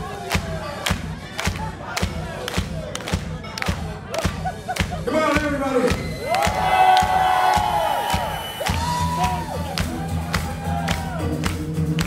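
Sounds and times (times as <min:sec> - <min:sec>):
crowd cheering: 0:00.0 - 0:12.0
synth-pop band playing: 0:00.0 - 0:12.0.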